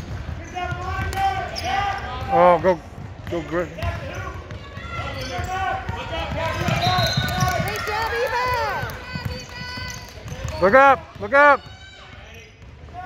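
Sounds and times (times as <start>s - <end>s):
basketball dribbling on hardwood: 2.9s - 12.9s
overlapping shouts: 7.2s - 10.1s.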